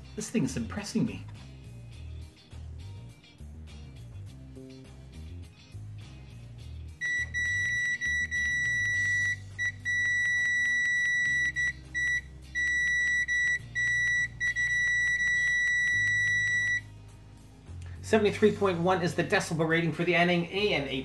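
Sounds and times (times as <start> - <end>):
multimeter continuity beep: 7.0 - 16.9.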